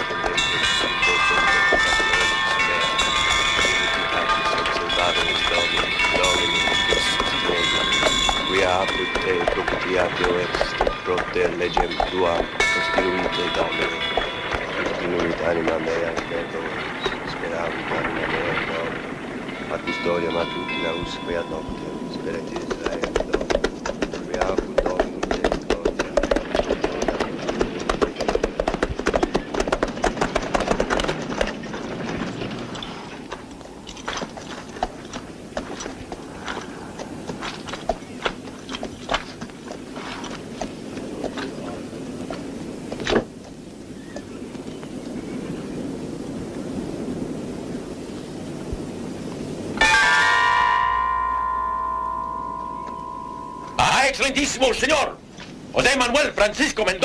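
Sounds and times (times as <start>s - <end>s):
loud ringing tone: 0.0s - 11.2s, 49.8s - 55.0s
knocks and clatter: 0.0s - 41.7s
horse-drawn carriage moving: 0.0s - 45.8s, 53.4s - 57.0s
horses' hooves: 0.0s - 57.0s.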